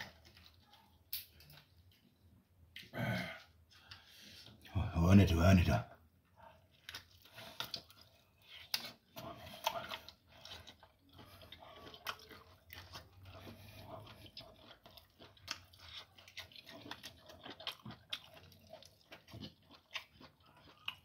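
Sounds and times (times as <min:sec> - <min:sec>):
person chewing meat: 0:00.0 - 0:02.9, 0:06.3 - 0:21.0.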